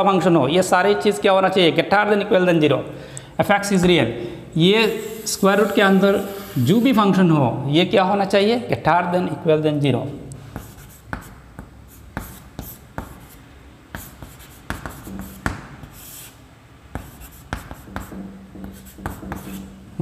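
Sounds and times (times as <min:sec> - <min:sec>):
chalk tapping and scratching: 0:04.8 - 0:07.1, 0:10.5 - 0:19.9.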